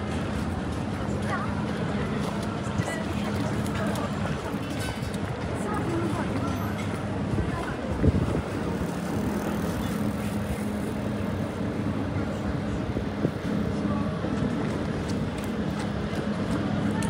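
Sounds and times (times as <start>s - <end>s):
traffic engine hum: 0.0s - 17.0s
wind buffeting microphone: 6.9s - 9.6s.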